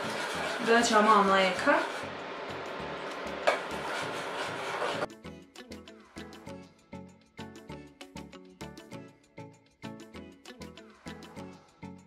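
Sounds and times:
metal spoon scraping a pot: 0.0s - 2.1s, 3.5s - 5.1s
background music with steady beat: 2.0s - 12.0s.

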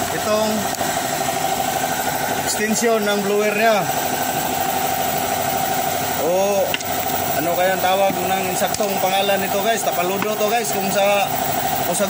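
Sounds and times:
engine humming steadily: 0.0s - 12.0s.

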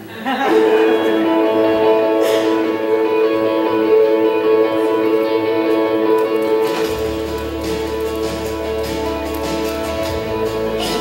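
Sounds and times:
music with held chord: 0.5s - 11.0s.

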